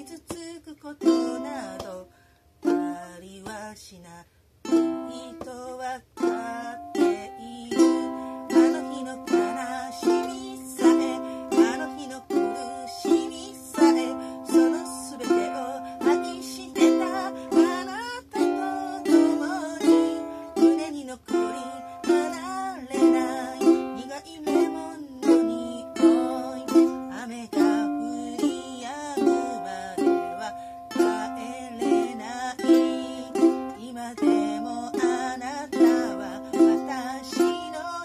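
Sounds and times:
ukulele strumming chords: 0.0s - 3.6s, 4.6s - 38.0s
woman singing: 0.0s - 38.0s.

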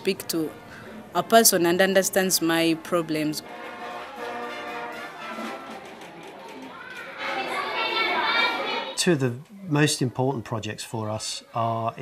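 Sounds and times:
children's voices and chatter: 3.8s - 9.2s.

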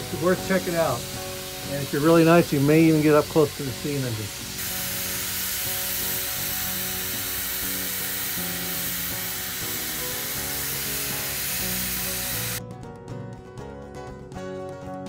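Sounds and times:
steam locomotive hissing: 0.0s - 12.6s
background music: 0.0s - 15.0s.

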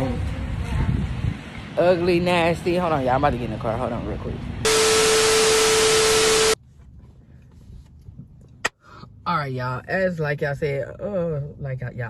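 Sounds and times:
steady tone: 4.7s - 6.6s.

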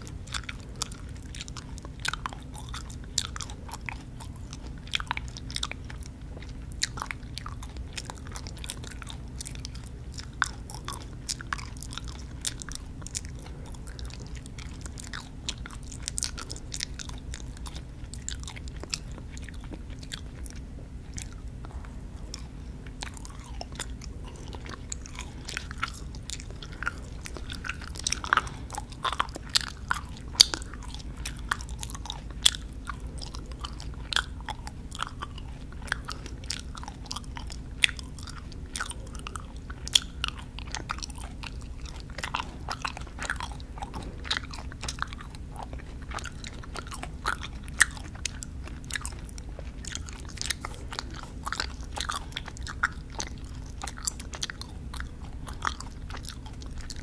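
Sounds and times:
chewing gummy candy: 0.0s - 57.0s
steady low hum: 0.0s - 57.0s.

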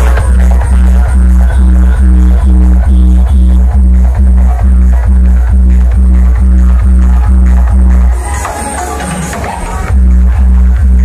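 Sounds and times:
loud electronic dance music: 0.0s - 11.0s.

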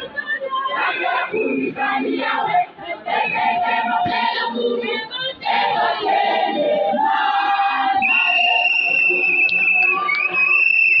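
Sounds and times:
women's choir singing: 0.0s - 11.0s.

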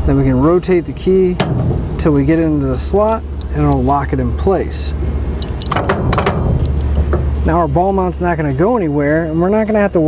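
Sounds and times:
key ring jingling: 5.4s - 5.8s.

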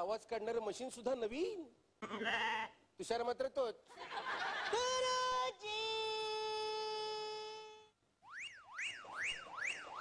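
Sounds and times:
siren-like warble: 8.2s - 10.0s.

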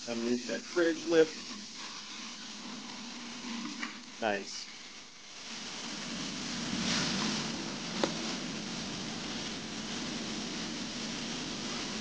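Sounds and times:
spray and vacuum hiss: 0.0s - 12.0s.

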